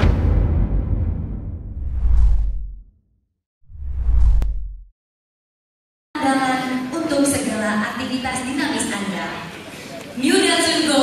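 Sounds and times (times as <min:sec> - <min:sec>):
deep low rumble: 0:00.0 - 0:02.9, 0:03.7 - 0:04.9
whoosh sound effect: 0:01.7 - 0:02.8, 0:03.7 - 0:04.9.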